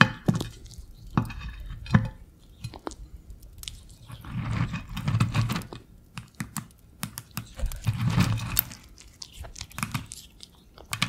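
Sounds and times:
ferret licking and chewing: 0.2 - 11.0.

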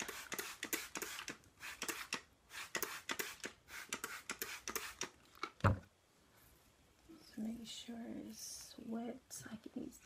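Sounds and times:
spray bottle misting: 0.0 - 5.1.

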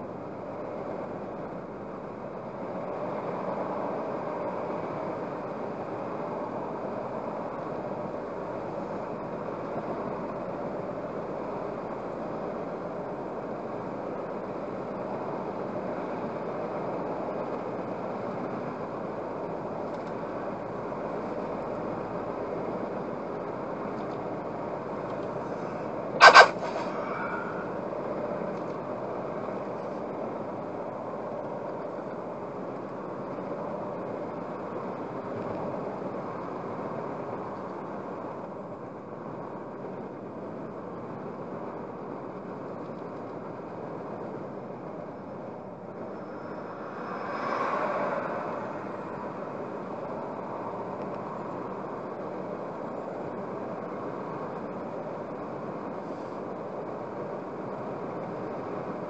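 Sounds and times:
car cabin road noise: 0.0 - 59.0
short loud beep: 26.2 - 26.8.

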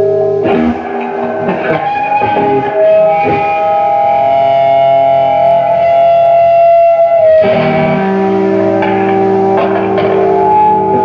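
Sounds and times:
electric guitar sustained note: 0.0 - 11.0.

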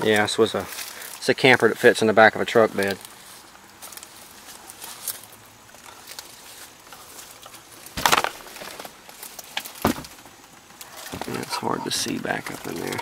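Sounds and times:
scuffing rustles: 2.8 - 10.2.

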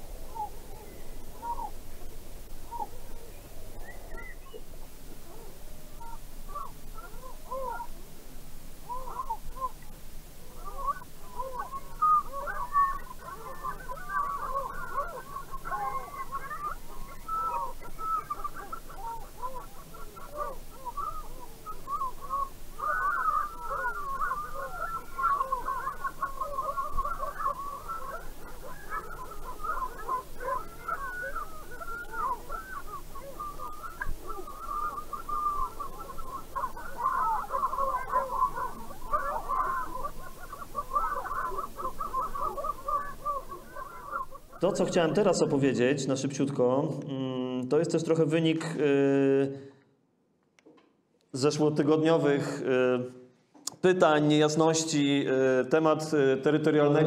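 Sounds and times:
flock of birds calling: 0.0 - 46.2.

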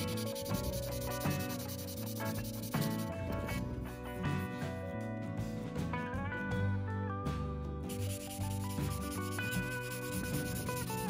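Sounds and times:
sandpaper rubbing on plastic: 0.0 - 3.1, 7.9 - 11.0
guitar music: 0.0 - 11.0.

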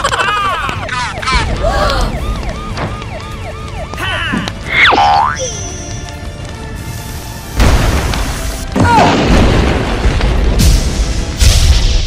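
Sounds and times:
background music: 2.2 - 12.0
deep rumbling boom: 9.0 - 12.0.

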